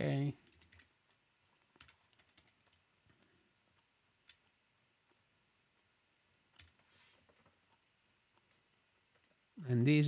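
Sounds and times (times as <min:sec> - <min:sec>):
computer keyboard keystrokes: 0:00.4 - 0:00.9, 0:01.7 - 0:02.8, 0:06.5 - 0:06.8.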